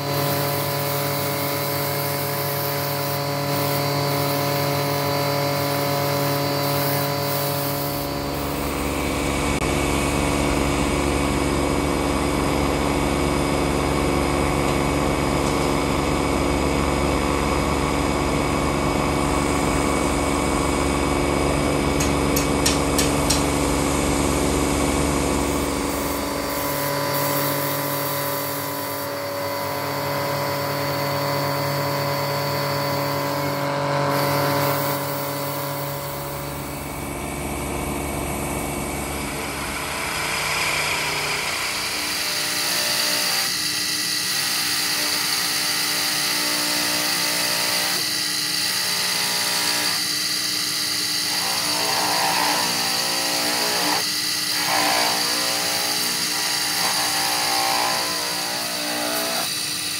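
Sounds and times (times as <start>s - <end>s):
belt grinder running: 0.0s - 59.9s.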